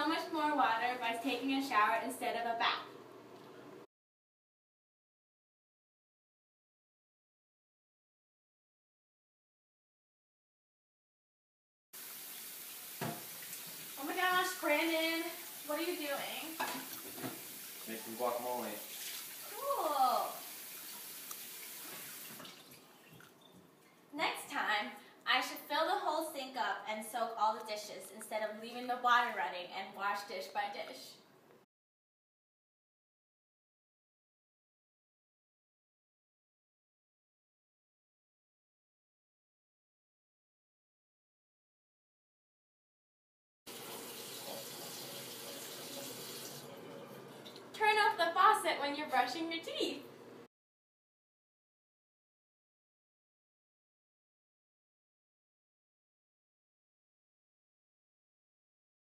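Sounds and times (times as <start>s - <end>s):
tap water splashing into sink: 12.0s - 14.0s, 16.5s - 19.5s, 20.5s - 23.4s
tap water running: 12.0s - 23.6s, 43.7s - 48.0s.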